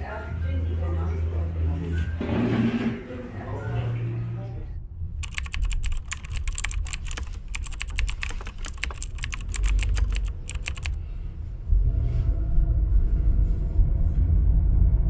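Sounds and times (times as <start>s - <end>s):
keyboard typing clicks: 5.2s - 11.0s
low rumble of a car: 11.1s - 15.0s.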